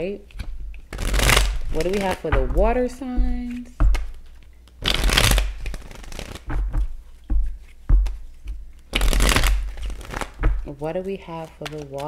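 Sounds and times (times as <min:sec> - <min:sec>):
cards being shuffled: 0:00.0 - 0:12.0
cards tapping and knocking: 0:00.2 - 0:12.0.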